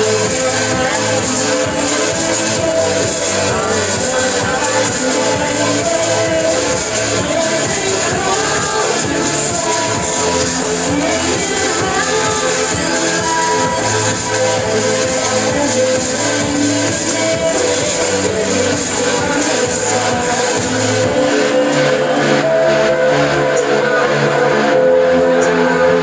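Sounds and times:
trance dance music: 0.0 - 26.0.

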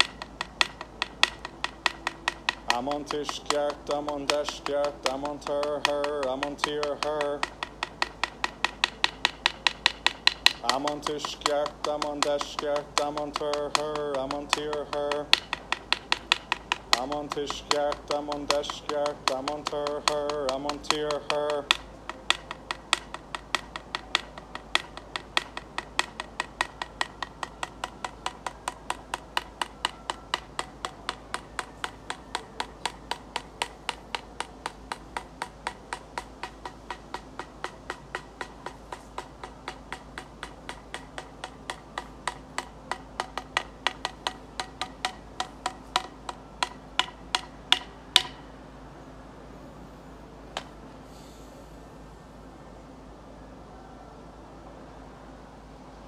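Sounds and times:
antlers clacking together: 0.0 - 48.6.

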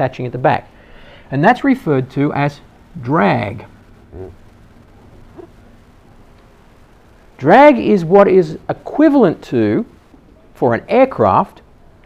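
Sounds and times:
man murmuring mm: 4.1 - 4.4.

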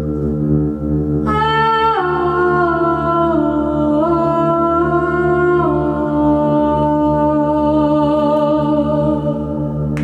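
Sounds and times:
steady low drone: 0.0 - 10.0.

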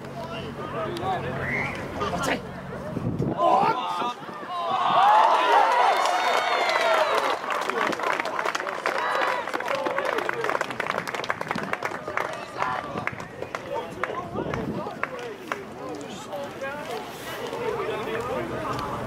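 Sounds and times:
people shouting and cheering: 0.2 - 10.9, 11.5 - 16.5
hand claps: 7.2 - 15.6.

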